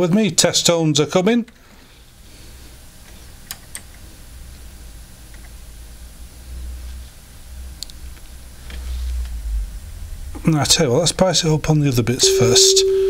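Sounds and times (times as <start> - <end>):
low rumble: 8.7 - 13.0.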